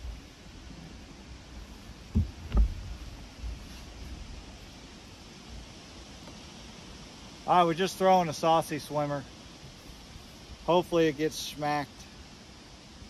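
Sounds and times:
dull thumps: 0:02.0 - 0:03.6.

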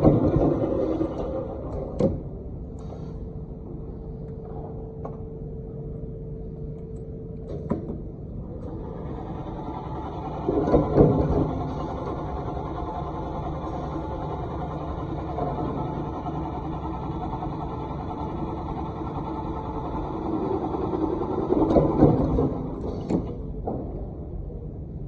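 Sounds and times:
machine running: 0:08.4 - 0:23.7.

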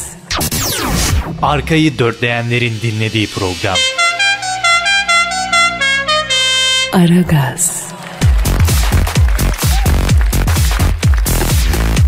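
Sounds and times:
radio jingle horn-like notes: 0:03.6 - 0:07.6.

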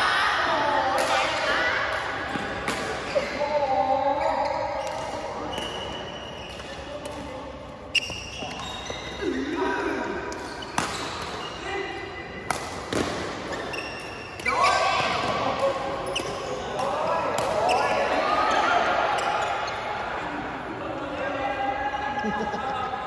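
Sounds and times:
shoes squeaking: 0:04.1 - 0:11.9, 0:13.4 - 0:15.4, 0:16.0 - 0:19.9
rackets hitting shuttlecocks: 0:10.3 - 0:11.4, 0:12.4 - 0:18.0
people's voices: 0:14.4 - 0:23.0.

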